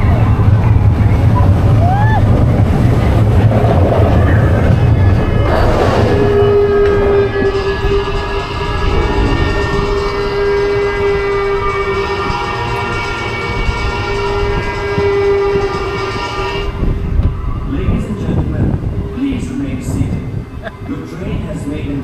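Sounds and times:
lift chain machine hum and whine: 0:00.0 - 0:21.3
rattling rumble: 0:00.0 - 0:22.0.

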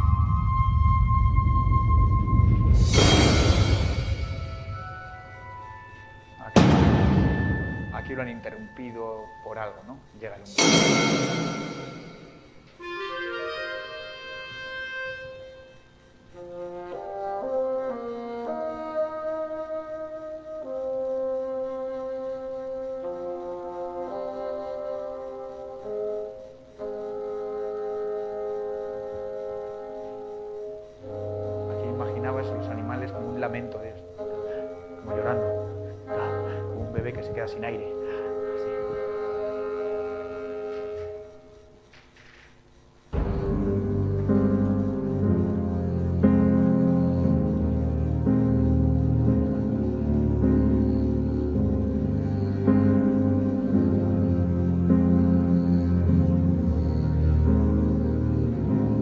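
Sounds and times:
slow orchestral music: 0:00.0 - 0:41.8, 0:43.2 - 0:59.0
orchestra holding a sustained chord: 0:02.8 - 0:15.8, 0:31.1 - 0:41.4.

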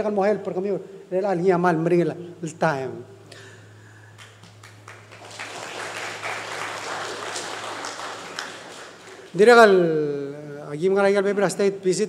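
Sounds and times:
audience applauding: 0:04.2 - 0:09.6.

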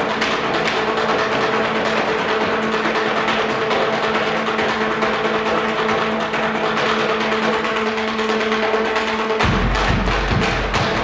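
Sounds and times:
percussion ensemble rapid rolls: 0:00.0 - 0:11.0
steady held pitches: 0:00.0 - 0:11.0.

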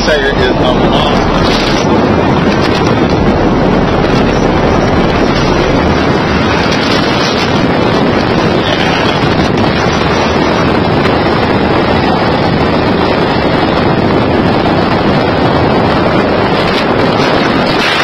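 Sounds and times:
truck road noise: 0:00.0 - 0:18.0
wind rush over microphone: 0:00.0 - 0:18.0.

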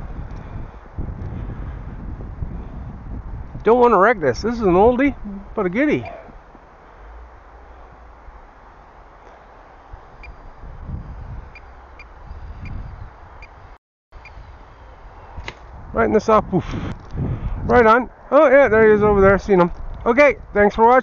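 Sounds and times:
wind rumbling on microphone: 0:00.0 - 0:21.0.

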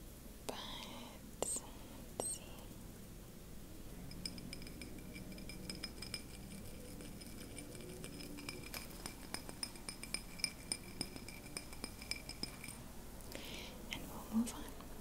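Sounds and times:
faint steady high tone: 0:02.2 - 0:02.6
taps and clinks on glass: 0:04.0 - 0:12.8.

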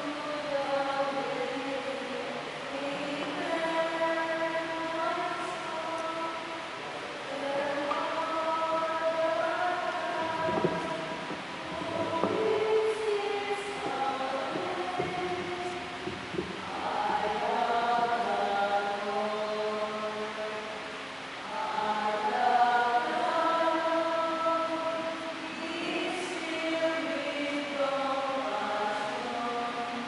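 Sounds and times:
church choir singing a hymn: 0:00.0 - 0:20.8, 0:21.4 - 0:30.0.

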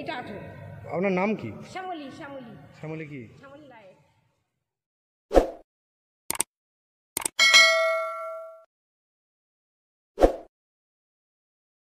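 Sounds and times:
notification bell ding: 0:07.4 - 0:08.7.

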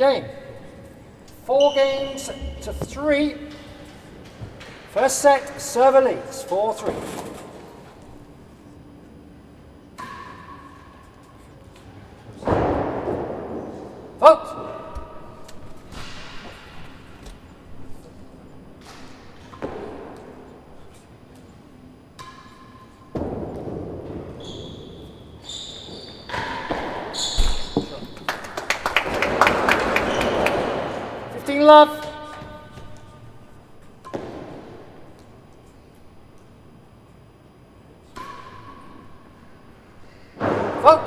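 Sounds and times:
rackets striking ball: 0:02.0 - 0:04.9, 0:18.8 - 0:20.6, 0:22.1 - 0:24.4, 0:26.3 - 0:31.2, 0:32.0 - 0:35.7, 0:38.0 - 0:39.6
applause: 0:28.2 - 0:30.7.

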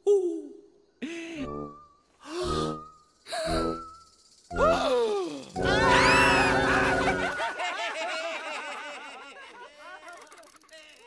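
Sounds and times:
music: 0:01.4 - 0:07.6.

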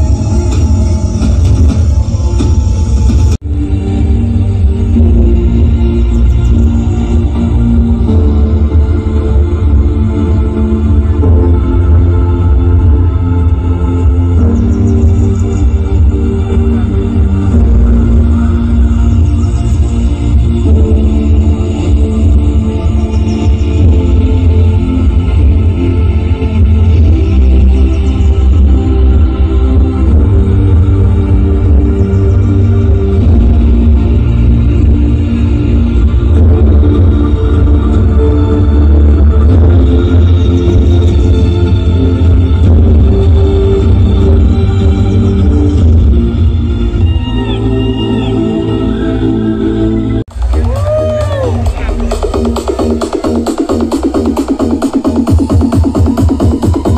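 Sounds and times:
loud music with heavy bass: 0:00.0 - 0:56.9.

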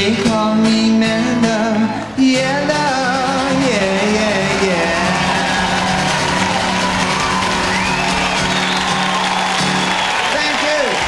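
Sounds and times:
audience cheering and whooping: 0:04.2 - 0:11.0.

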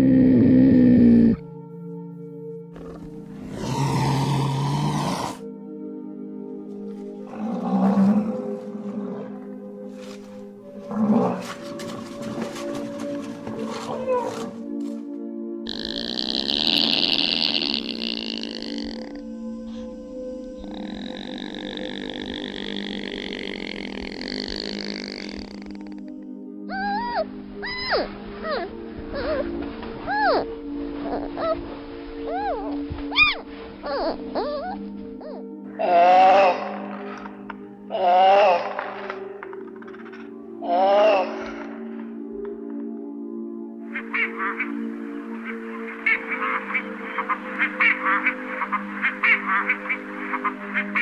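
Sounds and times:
background music: 0:00.0 - 0:51.0
leopard growling: 0:02.7 - 0:05.4, 0:07.0 - 0:14.8, 0:15.7 - 0:26.2
high-pitched animal call: 0:15.7 - 0:19.2, 0:20.6 - 0:26.1, 0:32.3 - 0:36.8.

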